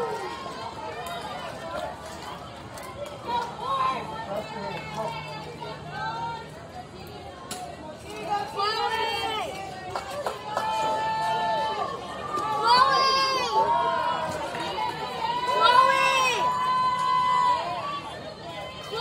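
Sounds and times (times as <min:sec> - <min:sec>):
young voices shouting cheers: 0:08.2 - 0:09.8, 0:10.4 - 0:19.0.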